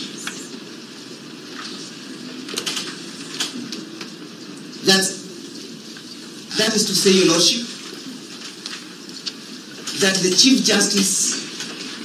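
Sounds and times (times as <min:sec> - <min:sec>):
low room murmur: 0:00.0 - 0:12.0.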